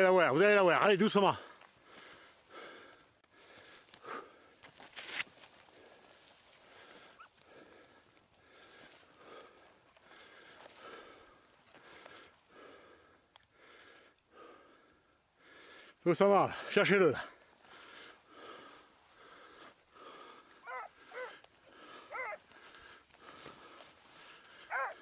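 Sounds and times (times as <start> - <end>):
rhythmic breathing: 17.6 - 25.0
dry brush crackling: 18.5 - 25.0.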